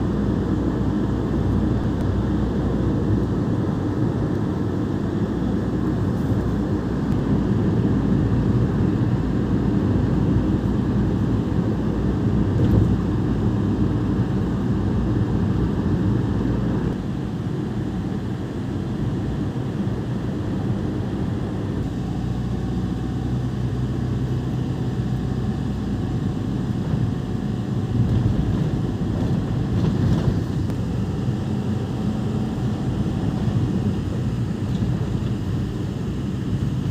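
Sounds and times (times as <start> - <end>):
car cabin road noise: 0.0 - 36.9.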